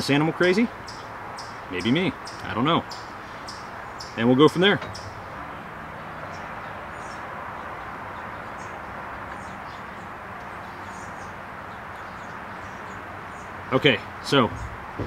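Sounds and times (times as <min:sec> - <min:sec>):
outdoor background noise: 0:00.0 - 0:15.0.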